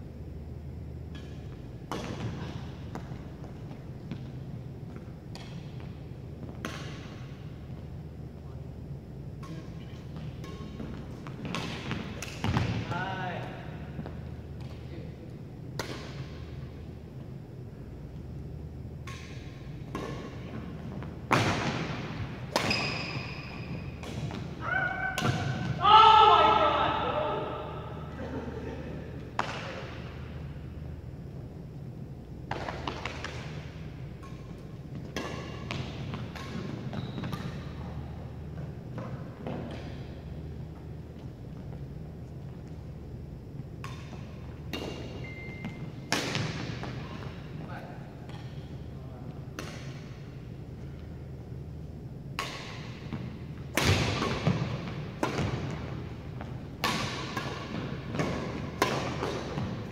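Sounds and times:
racket hitting shuttlecock: 0:01.1 - 0:03.2, 0:04.9 - 0:05.9, 0:06.5 - 0:07.2, 0:09.4 - 0:12.8, 0:15.7 - 0:16.5, 0:19.0 - 0:25.8, 0:29.3 - 0:30.0, 0:32.4 - 0:38.0, 0:43.8 - 0:47.4, 0:49.4 - 0:50.4, 0:52.3 - 0:59.9
loud voice calling out: 0:25.8 - 0:27.9
thin high squeak: 0:45.2 - 0:45.8.

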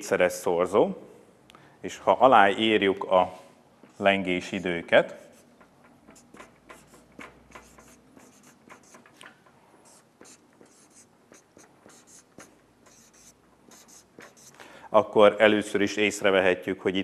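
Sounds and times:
marker pen writing on paper: 0:04.5 - 0:14.6.

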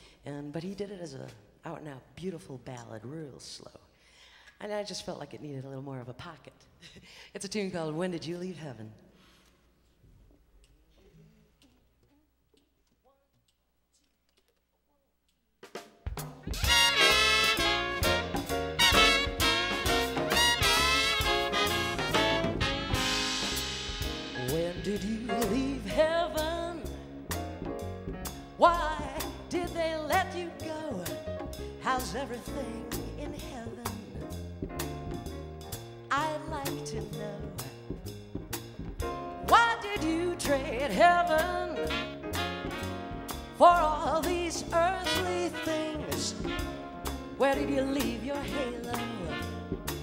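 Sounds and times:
jazz band playing swing: 0:15.7 - 0:50.0
sharp drum kit hits: 0:16.1 - 0:25.6.

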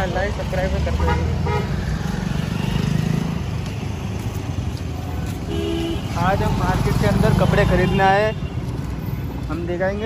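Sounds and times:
vehicle engines passing: 0:00.0 - 0:10.0.

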